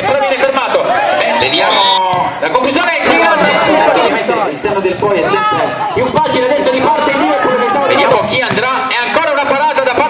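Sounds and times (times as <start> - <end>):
voices talking and calling: 0.0 - 9.2
crowd chatter: 0.0 - 10.0.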